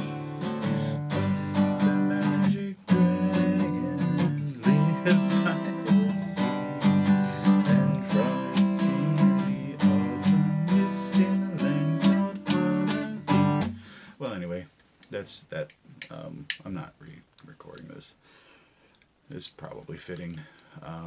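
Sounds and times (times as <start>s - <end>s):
man singing: 0.0s - 13.7s
acoustic guitar strumming: 0.0s - 14.1s
man speaking: 14.2s - 18.2s, 19.3s - 21.0s.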